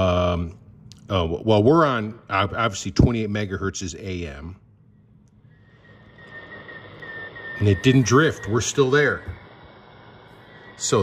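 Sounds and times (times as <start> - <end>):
steady high radio tone: 5.0 - 11.0
radio static hiss: 5.6 - 11.0.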